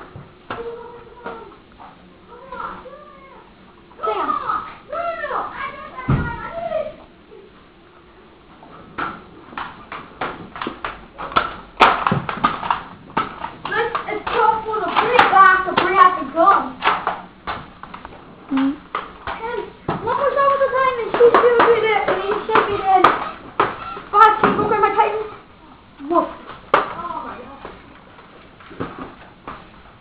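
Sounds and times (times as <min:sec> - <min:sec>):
child calling out: 0:02.3 - 0:07.0
rapid sharp knocks: 0:09.0 - 0:16.2, 0:21.1 - 0:24.8.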